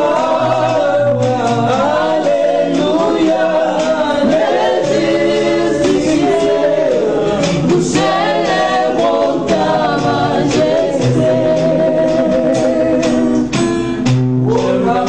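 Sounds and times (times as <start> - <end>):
group singing gospel song: 0.0 - 15.0.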